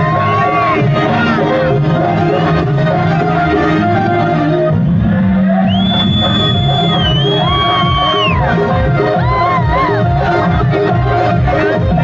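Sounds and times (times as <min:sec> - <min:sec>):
live folk band through loudspeakers: 0:00.0 - 0:12.0
long high-pitched whistle: 0:05.7 - 0:08.4.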